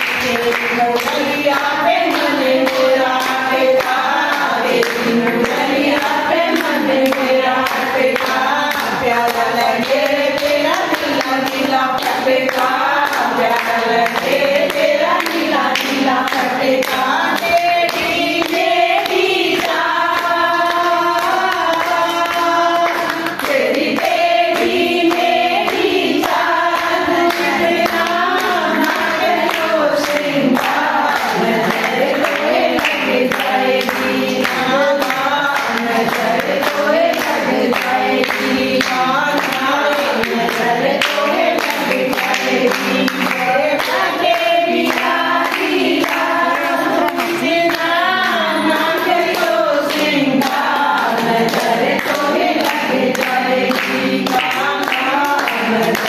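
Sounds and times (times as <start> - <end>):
people singing a folk song: 0.0 - 56.0.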